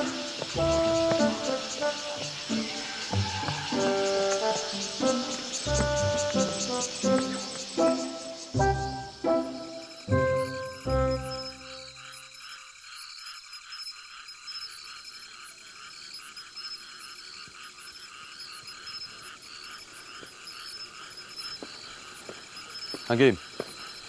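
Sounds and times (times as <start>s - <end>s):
music cue: 0.0s - 12.0s
high-pitched chirps: 0.0s - 12.5s
frogs calling: 0.0s - 24.0s.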